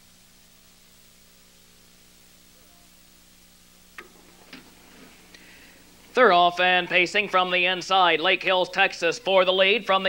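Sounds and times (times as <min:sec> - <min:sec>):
faint electrical hum and hiss: 0:00.0 - 0:10.0.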